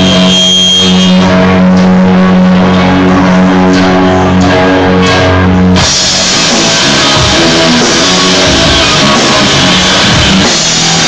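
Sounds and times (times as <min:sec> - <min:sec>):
bass guitar sustained notes: 0:00.0 - 0:11.0
electric guitar ringing notes: 0:00.0 - 0:11.0.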